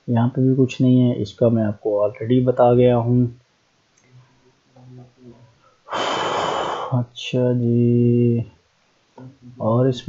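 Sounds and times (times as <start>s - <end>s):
faint low murmuring: 4.0s - 8.5s
breath blown into microphone: 5.6s - 7.0s
man's voice: 9.5s - 10.0s.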